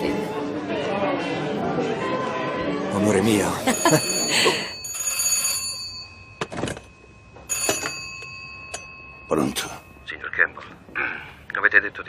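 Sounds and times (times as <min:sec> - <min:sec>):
telephone bell ringing: 0:03.7 - 0:10.1.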